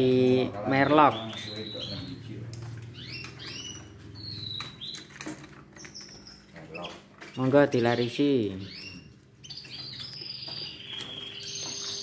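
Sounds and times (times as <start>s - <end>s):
canaries chirping: 0.0s - 12.0s.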